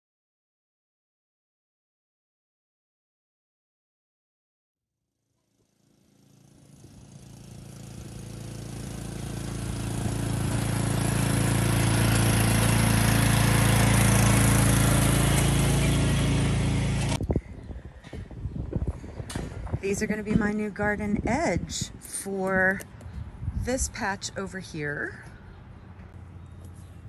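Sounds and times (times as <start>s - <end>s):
lawn tractor engine running: 5.6s - 17.2s.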